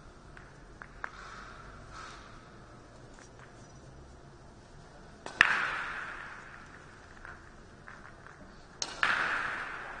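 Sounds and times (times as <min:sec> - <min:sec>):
hard clacks in reverberant hall: 0:05.3 - 0:10.0.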